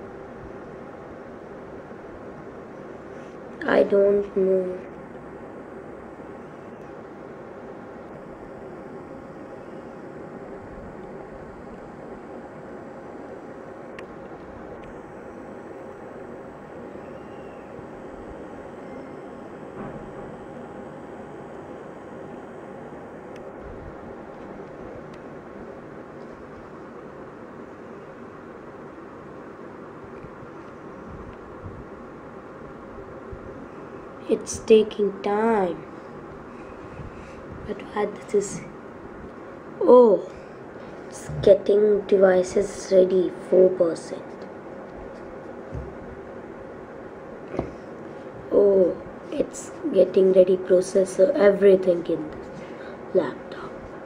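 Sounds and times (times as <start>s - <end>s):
faint steady tones: 0.0s - 54.0s
room hum and hiss: 0.0s - 54.0s.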